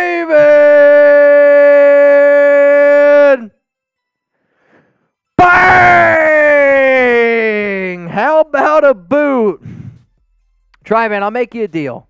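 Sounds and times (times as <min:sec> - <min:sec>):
man shouting long: 0:00.0 - 0:03.5, 0:05.4 - 0:09.5.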